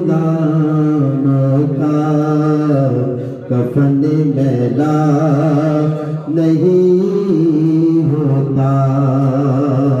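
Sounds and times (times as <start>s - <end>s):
man singing a devotional chant: 0.0s - 10.0s.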